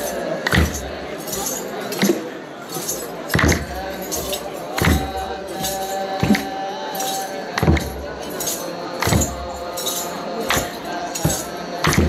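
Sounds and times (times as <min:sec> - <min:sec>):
crowd singing and talking: 0:00.0 - 0:12.0
jangling metal percussion: 0:00.0 - 0:12.0
drum beaten slowly: 0:03.3 - 0:06.6.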